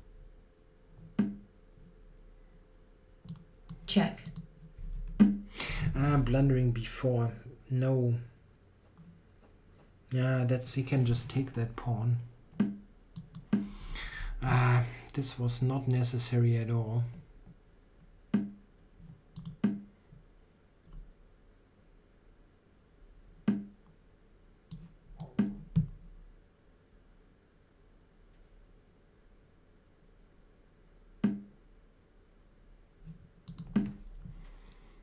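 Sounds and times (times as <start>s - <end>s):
computer mouse clicks: 3.2s - 4.5s, 12.6s - 13.8s, 19.3s - 19.9s, 24.7s - 25.9s, 33.0s - 34.0s.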